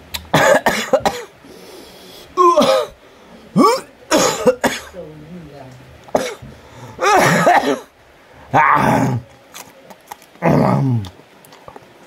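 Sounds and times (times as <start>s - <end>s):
man coughing and clearing throat: 0.3s - 1.3s, 2.4s - 3.0s, 3.6s - 5.0s, 6.1s - 7.9s.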